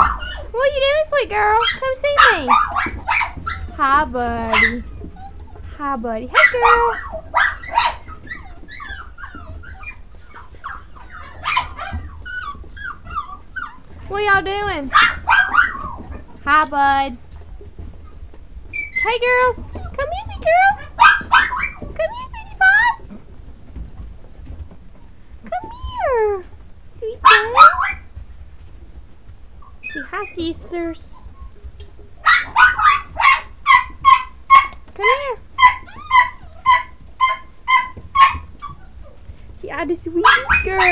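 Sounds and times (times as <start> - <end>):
puppies whining and yipping: 0.0 - 40.9.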